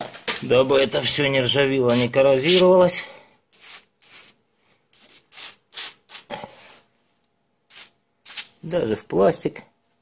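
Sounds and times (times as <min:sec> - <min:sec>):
short rubbing hissing noises: 0:01.9 - 0:06.9, 0:07.7 - 0:08.6.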